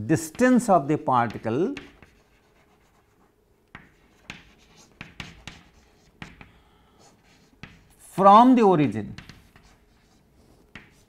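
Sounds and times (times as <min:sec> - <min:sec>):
chalk tapping and scratching: 0:00.2 - 0:08.2, 0:09.1 - 0:11.0.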